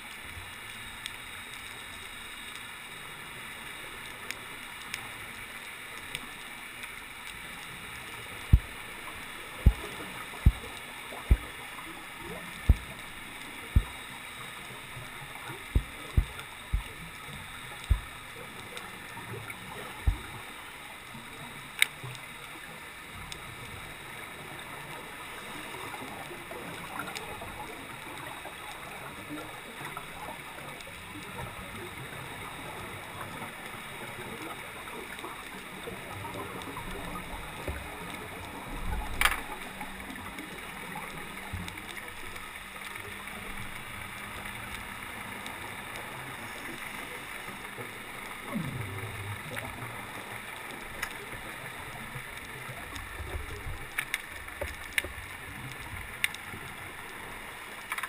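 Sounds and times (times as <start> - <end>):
steady underwater noise: 0.0 - 58.0
scuba regulator bubbles: 0.6 - 58.0.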